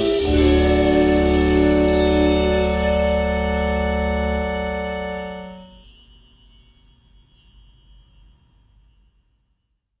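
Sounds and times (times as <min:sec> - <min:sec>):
high musical chime notes: 0:00.0 - 0:08.4.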